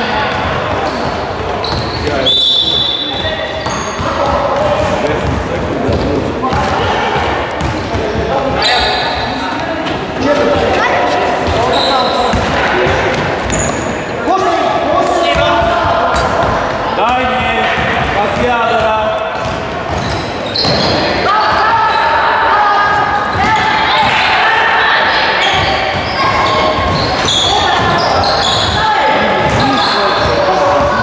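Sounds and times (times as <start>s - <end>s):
voices echoing in sports hall: 0.0s - 31.0s
basketball bouncing on wooden floor: 3.6s - 8.3s.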